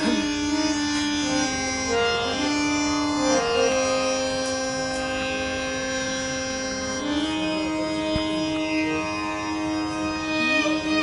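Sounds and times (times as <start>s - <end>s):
woman singing a long note: 0.0s - 0.4s
steady drone: 0.0s - 11.0s.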